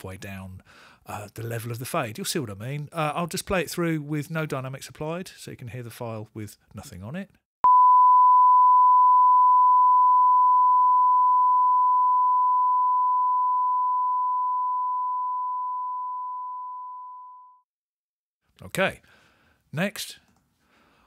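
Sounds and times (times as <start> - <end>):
sine-wave test tone: 7.6 - 17.7.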